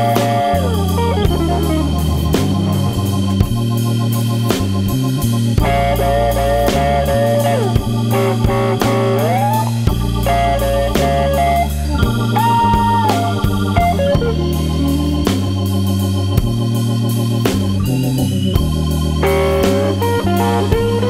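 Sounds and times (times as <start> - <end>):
bending lead guitar notes: 0.0 - 21.0
blues band playing: 0.0 - 21.0
drum hits: 7.8 - 9.2.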